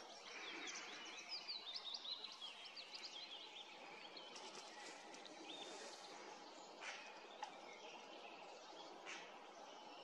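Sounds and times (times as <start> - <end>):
forest background hiss: 0.0 - 10.0
songbird chirping: 0.0 - 10.0.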